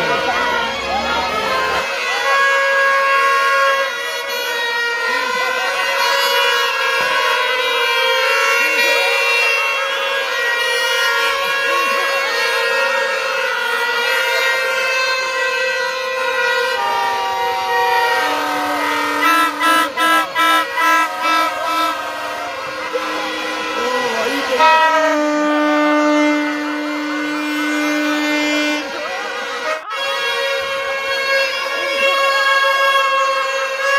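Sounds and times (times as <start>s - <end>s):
reedy wind instrument music: 0.0s - 33.9s.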